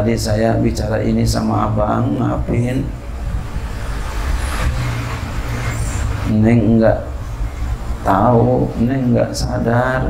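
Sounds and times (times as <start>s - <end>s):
low engine-like rumble: 0.3s - 10.0s.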